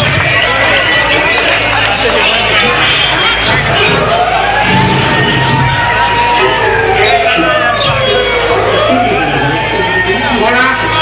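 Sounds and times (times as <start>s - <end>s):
loud dance music: 0.0s - 9.4s
crowd shouting and singing: 0.0s - 11.0s.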